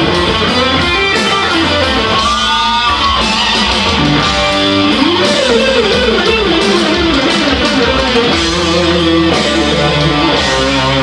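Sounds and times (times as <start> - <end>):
electric guitar lead melody: 0.0 - 11.0.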